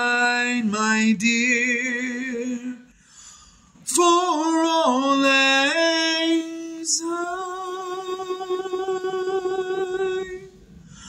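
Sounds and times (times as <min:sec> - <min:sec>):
man singing a long note: 0:03.8 - 0:10.6.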